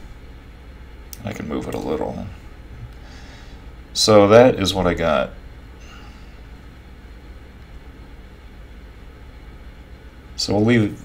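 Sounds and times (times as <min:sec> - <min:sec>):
low background hum with hiss: 0:00.0 - 0:11.0.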